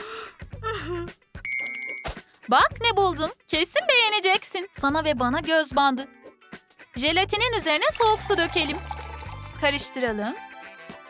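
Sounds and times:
girl whimpering sob: 0:00.0 - 0:01.2
bell-like chime: 0:01.5 - 0:02.0.

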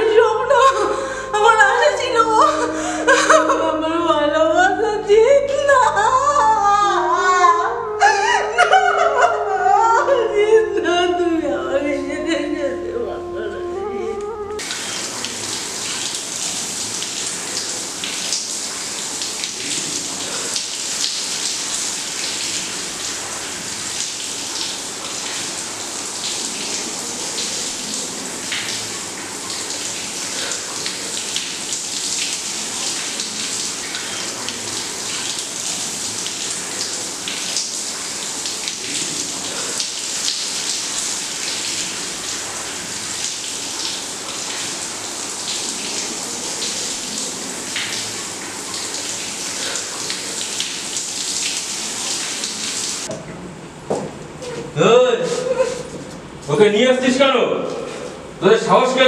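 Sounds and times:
shower water splashing on tiles: 0:00.0 - 0:03.6, 0:13.7 - 0:53.4, 0:54.0 - 0:56.5.

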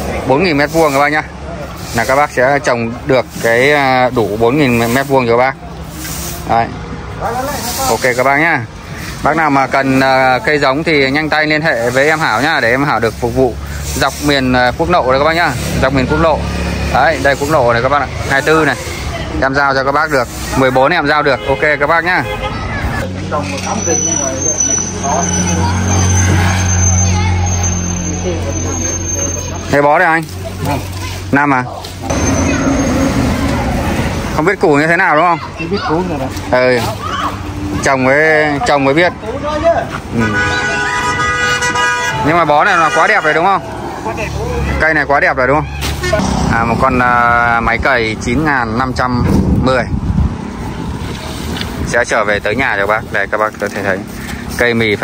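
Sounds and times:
vehicle engine drone: 0:23.0 - 0:31.3, 0:31.9 - 0:34.6, 0:43.3 - 0:51.0
truck engine humming: 0:32.0 - 0:34.8.

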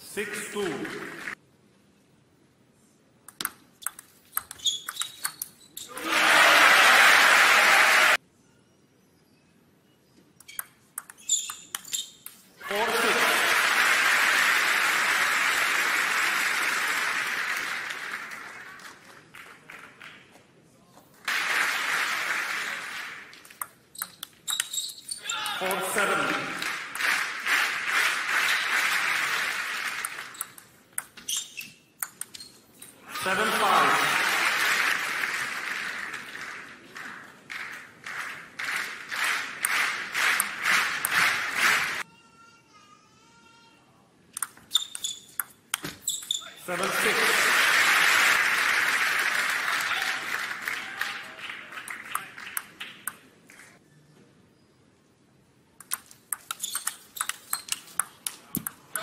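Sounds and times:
ping pong ball clicks: 0:03.3 - 0:05.6, 0:10.4 - 0:11.9, 0:55.8 - 0:59.0
shoe squeaks on floor: 0:04.5 - 0:05.9, 0:10.5 - 0:12.4, 0:23.9 - 0:25.3, 0:31.2 - 0:33.0, 0:44.7 - 0:46.6, 0:56.5 - 0:58.0
crowd cheering and applauding: 0:05.9 - 0:08.2, 0:12.6 - 0:20.2, 0:21.3 - 0:23.4, 0:25.5 - 0:30.4, 0:33.2 - 0:42.1, 0:46.7 - 0:53.1
crowd cheering and shouting: 0:05.9 - 0:08.2.

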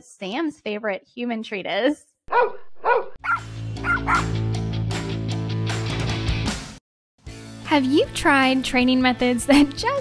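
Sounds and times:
dog barking: 0:02.3 - 0:04.4.

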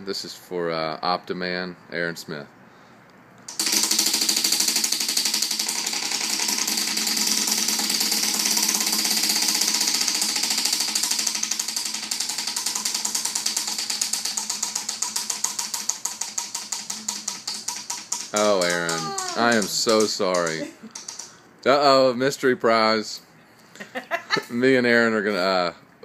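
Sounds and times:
prize wheel flapper clicking: 0:03.5 - 0:21.3.

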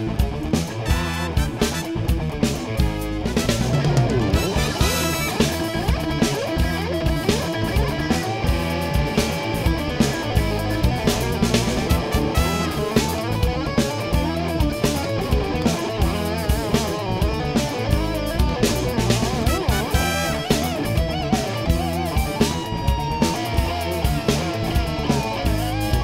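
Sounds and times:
bass: 0:00.0 - 0:26.0
drum kit: 0:00.0 - 0:26.0
electric guitar lead: 0:00.0 - 0:26.0
funk-rock instrumental: 0:00.0 - 0:26.0.

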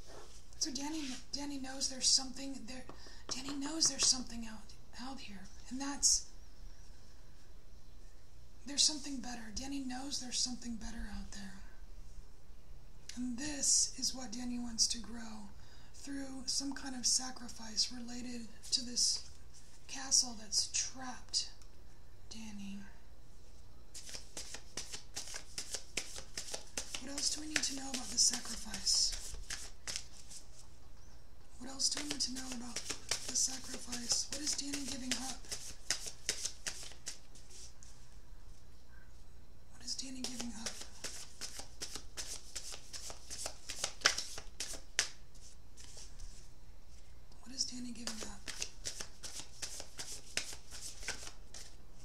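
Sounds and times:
cards being shuffled: 0:00.3 - 0:01.3, 0:23.9 - 0:30.7, 0:31.8 - 0:37.8, 0:40.1 - 0:46.5, 0:48.0 - 0:52.0.

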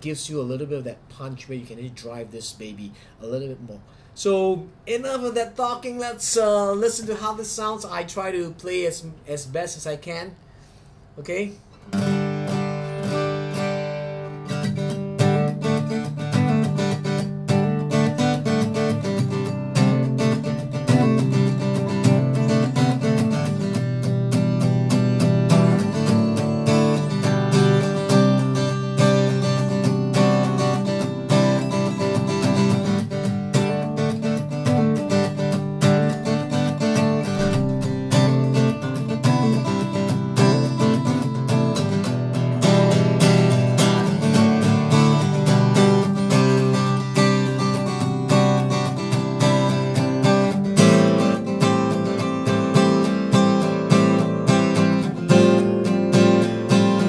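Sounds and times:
person talking: 0:00.0 - 0:10.4, 0:11.2 - 0:11.7
acoustic guitar chords: 0:11.7 - 0:57.0.

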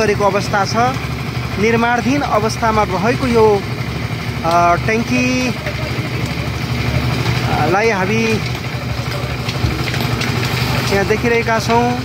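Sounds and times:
small engine running: 0:00.0 - 0:12.0
voices: 0:00.0 - 0:12.0.

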